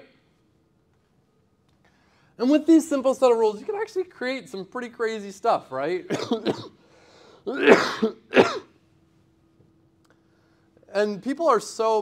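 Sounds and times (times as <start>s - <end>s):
man coughing: 6.1s - 6.8s, 7.5s - 8.8s.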